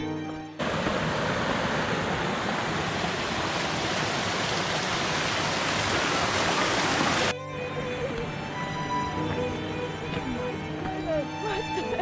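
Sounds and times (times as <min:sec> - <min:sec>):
creek cascading over rocks: 0:00.6 - 0:07.3.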